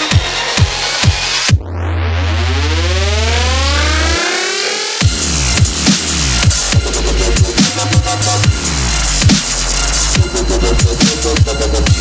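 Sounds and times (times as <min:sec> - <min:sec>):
rising synth sweep: 0:01.8 - 0:05.6.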